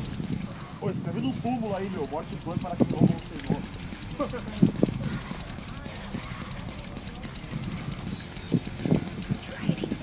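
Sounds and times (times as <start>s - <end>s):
people talking indistinctly: 0.0s - 10.0s.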